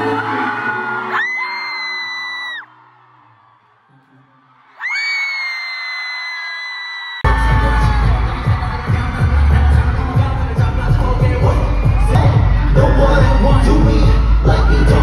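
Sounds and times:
singing over backing track: 0:00.0 - 0:01.7, 0:07.3 - 0:15.0
bass-heavy music: 0:07.2 - 0:15.0.

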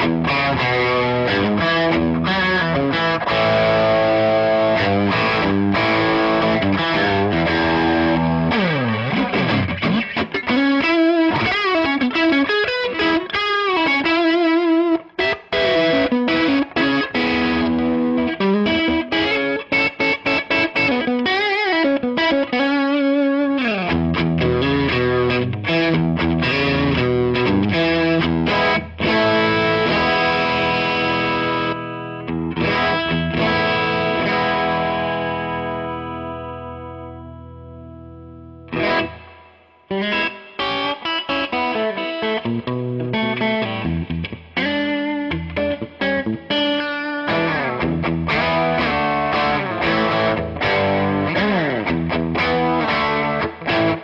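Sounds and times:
distorted electric guitar: 0:00.0 - 0:54.0
guitar falling pitch sweep: 0:00.0 - 0:54.0.

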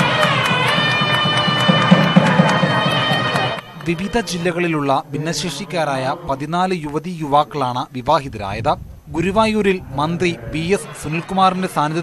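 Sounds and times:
steady drum beat: 0:00.0 - 0:03.6
crowd: 0:00.0 - 0:06.4, 0:10.0 - 0:12.0
reed pipe playing high notes: 0:00.0 - 0:06.7.

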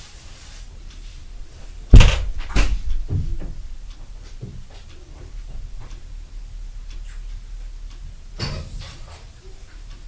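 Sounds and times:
sharp indoor bang: 0:01.9 - 0:03.6
dull thuds: 0:01.9 - 0:03.7.

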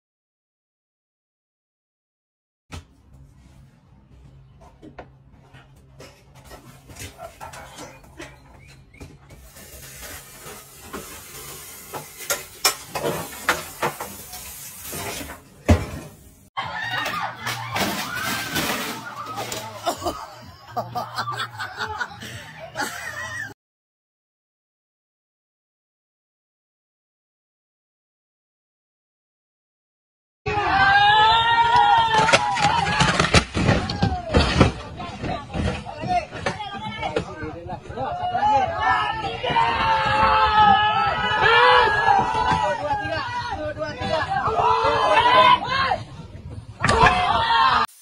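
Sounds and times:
hiss: 0:09.4 - 0:15.4
men calling and shouting: 0:33.8 - 0:47.9.

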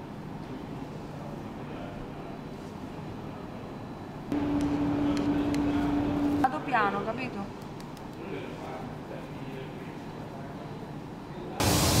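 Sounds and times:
low machine hum: 0:00.0 - 0:11.9
workroom background noise: 0:00.0 - 0:12.0.

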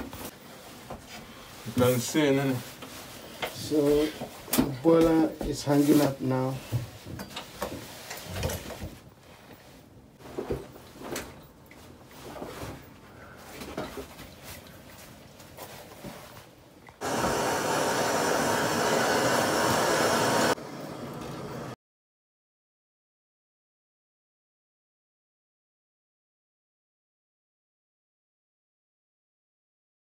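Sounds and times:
loud steady rushing noise: 0:17.0 - 0:20.9.

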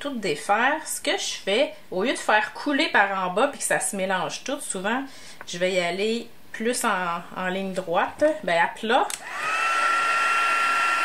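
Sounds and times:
heat tool fan whirring with whine: 0:09.2 - 0:11.0.

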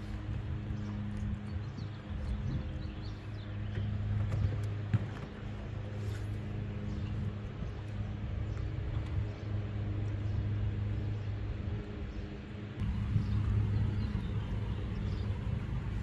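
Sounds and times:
electric trolling motor humming: 0:00.0 - 0:16.0.

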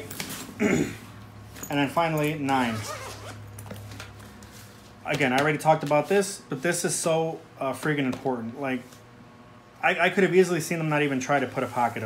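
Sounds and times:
backpack zipper opening: 0:02.6 - 0:03.5.

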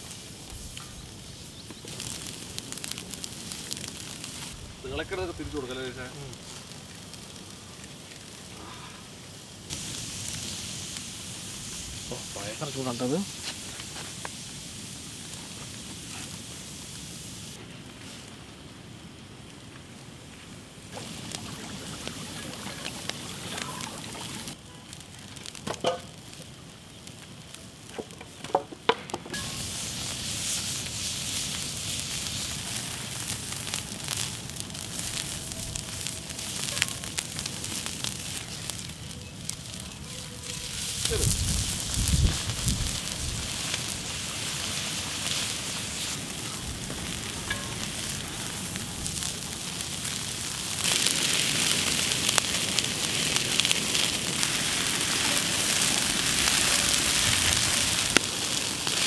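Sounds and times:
liquid boiling and sizzling: 0:00.0 - 0:59.0
wood fire crackling: 0:00.0 - 0:59.0.

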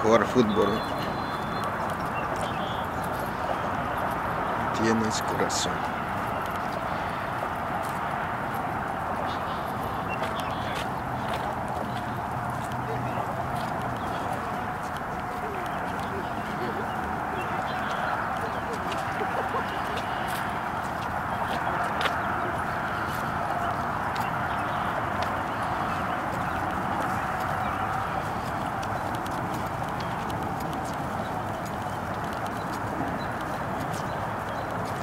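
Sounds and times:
footsteps on paved path: 0:00.0 - 0:35.0
steady background noise: 0:00.0 - 0:35.0.

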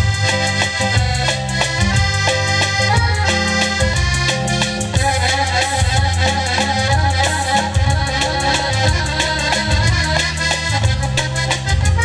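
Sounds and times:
piano accordion melody: 0:00.0 - 0:12.0
rhythmic backing with steady beat: 0:00.0 - 0:12.0.

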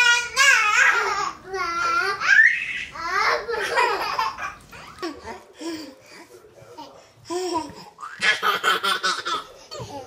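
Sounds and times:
babies laughing: 0:00.1 - 0:05.6, 0:06.9 - 0:10.0.

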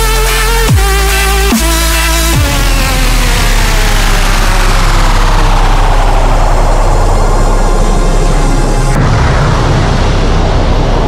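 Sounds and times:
distorted dubstep bass synth: 0:00.0 - 0:11.0.

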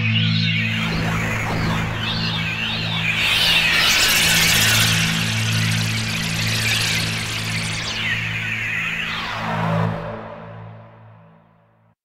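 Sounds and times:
held low synth notes: 0:00.0 - 0:11.4
wavering airy synth texture: 0:00.0 - 0:11.4.

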